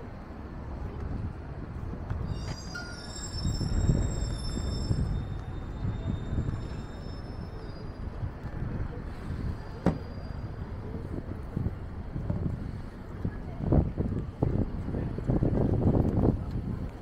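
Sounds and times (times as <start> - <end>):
street traffic rumbling: 0.0 - 17.0
vehicle brakes squealing: 2.2 - 8.4, 9.1 - 11.0.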